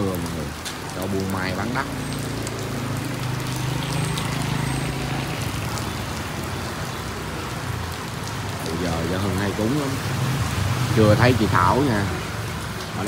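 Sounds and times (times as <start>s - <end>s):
heavy rain on wet street: 0.0s - 13.0s.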